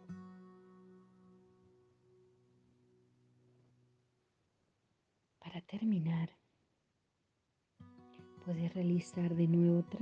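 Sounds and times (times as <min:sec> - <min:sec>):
person speaking softly: 0:05.4 - 0:06.4.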